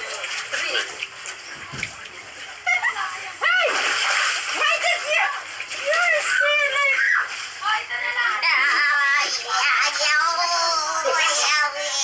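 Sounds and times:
water splashing in pool: 0.0s - 12.0s.

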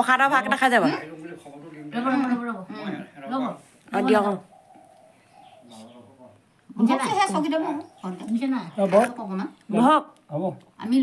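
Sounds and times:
faint low bird call: 4.1s - 8.9s.

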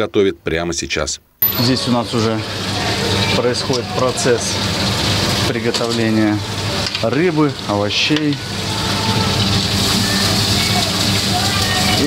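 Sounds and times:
meat sizzling on a grill: 1.5s - 12.0s.

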